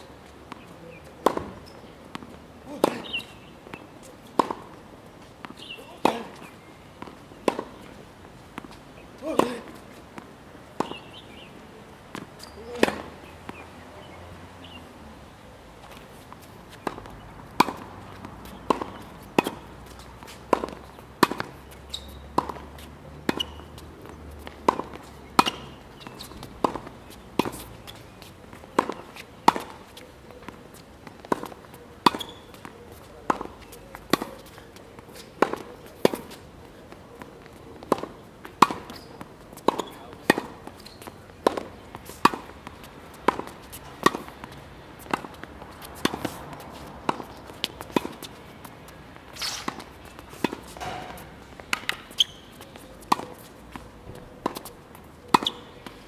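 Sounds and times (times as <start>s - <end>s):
tennis ball bouncing: 0.3s - 11.5s, 12.1s - 14.8s, 15.8s - 56.0s
racket hitting tennis ball: 1.2s - 8.0s, 8.6s - 11.5s, 12.1s - 13.6s, 15.8s - 56.0s.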